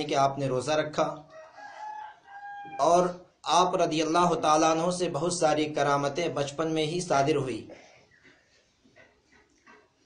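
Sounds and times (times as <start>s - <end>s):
man's voice: 0.0s - 1.2s, 2.7s - 7.8s
faint rooster crowing: 1.2s - 3.1s.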